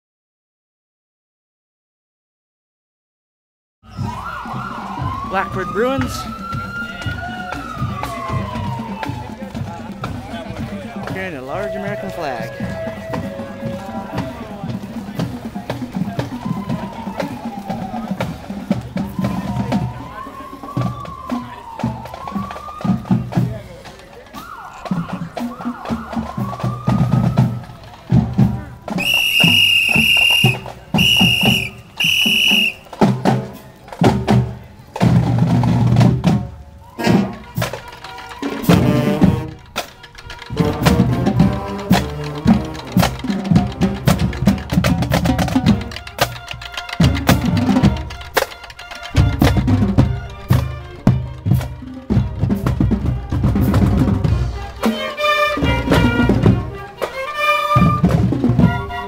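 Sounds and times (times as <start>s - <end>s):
snare and bass drums: 3.9s - 59.0s
whistle blasts: 29.0s - 33.0s.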